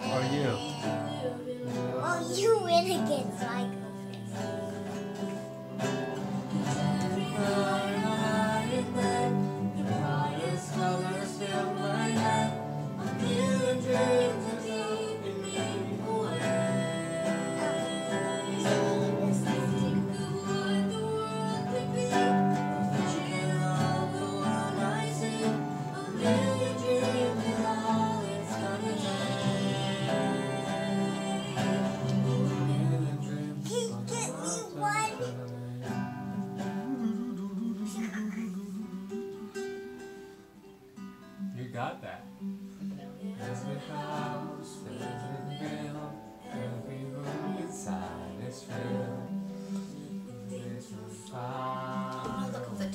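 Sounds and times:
classical guitar playing: 0.0s - 52.9s.

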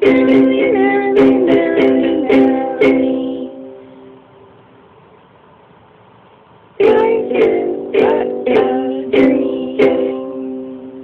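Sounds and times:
ukulele chord strums: 0.0s - 4.3s, 6.8s - 11.0s.

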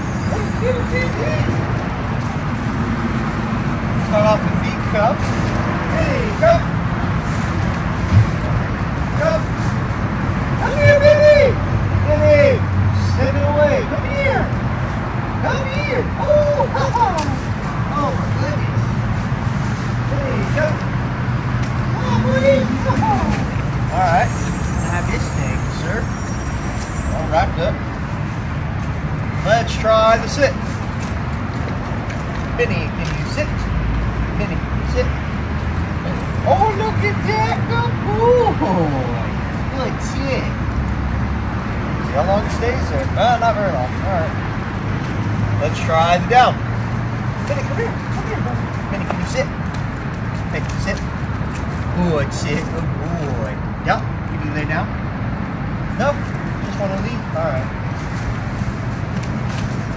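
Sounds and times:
road traffic rumble: 0.0s - 59.9s.

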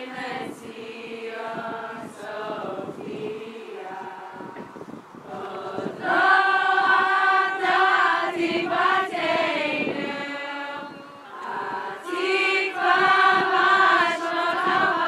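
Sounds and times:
group of people singing: 0.0s - 15.0s.

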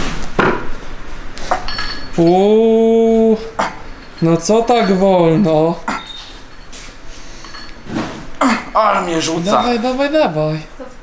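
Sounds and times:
barbell plates clinking and rattling: 1.5s - 2.5s, 3.8s - 8.0s
metallic ringing: 1.5s - 10.4s.

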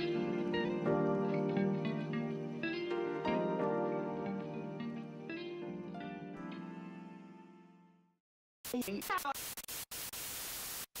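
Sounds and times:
television static hiss: 8.7s - 11.0s.

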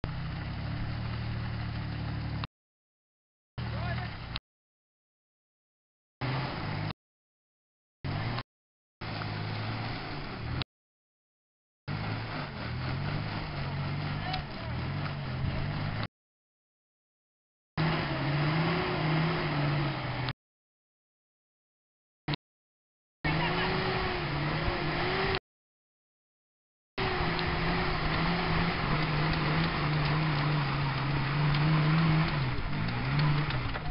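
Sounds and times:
engine idling: 0.0s - 2.5s
vehicle motor humming: 0.0s - 2.5s, 8.1s - 8.4s, 9.0s - 10.7s, 11.9s - 16.1s, 17.8s - 20.4s, 23.3s - 25.4s, 27.0s - 33.9s.

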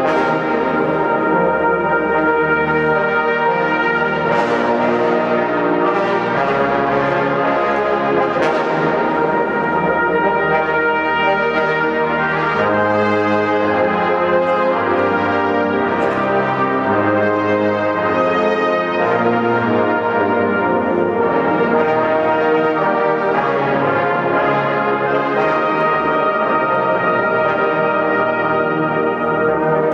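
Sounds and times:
brass ensemble playing chords: 0.0s - 29.9s.

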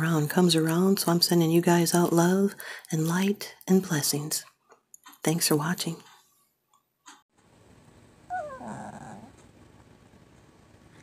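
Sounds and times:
dog whining: 8.3s - 9.4s
raspy dog vocal sound: 8.3s - 9.4s.

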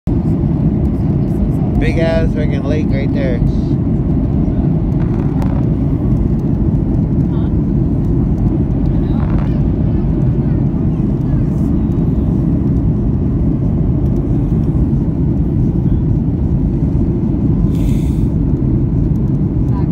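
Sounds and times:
airliner cabin rumble: 0.1s - 19.9s.

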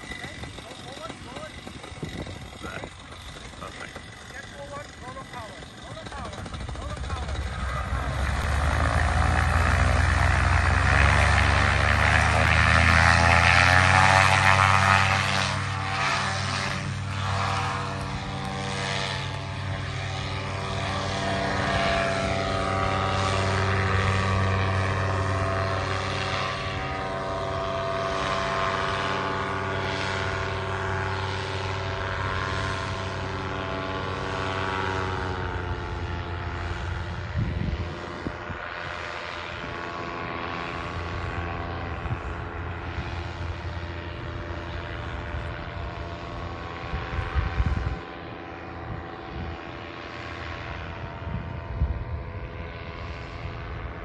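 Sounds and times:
wind buffeting microphone: 0.0s - 4.9s, 34.5s - 49.8s, 50.5s - 54.0s
paramotor engine and propeller: 0.0s - 54.0s.

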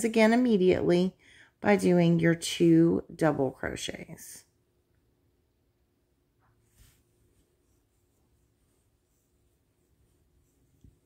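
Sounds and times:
yarn rubbing on crochet hook: 6.7s - 11.0s.

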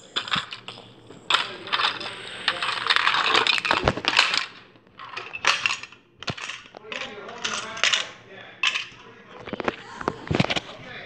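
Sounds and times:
plastic bricks clattering: 0.0s - 10.8s.

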